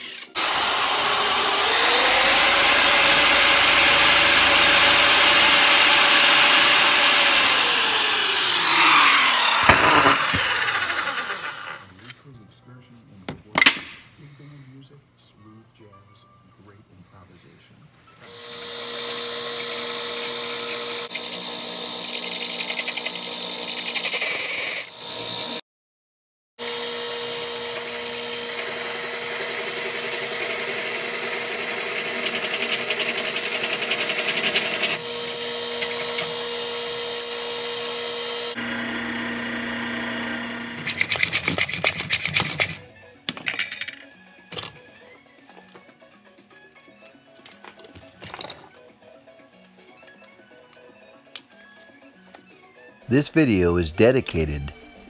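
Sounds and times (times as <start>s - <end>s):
drill bit boring: 0.0s - 11.8s, 18.3s - 25.6s, 26.6s - 42.8s
drill press motor humming: 0.0s - 11.8s, 18.2s - 25.6s, 26.6s - 41.4s.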